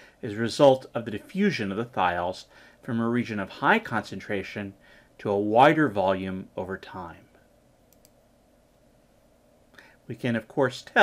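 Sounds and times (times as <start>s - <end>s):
person speaking: 0.2s - 7.4s.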